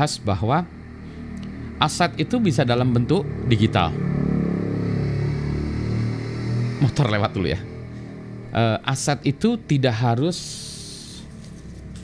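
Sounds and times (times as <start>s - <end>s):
motorcycle passing by: 0.6s - 12.0s
person speaking: 8.6s - 11.3s.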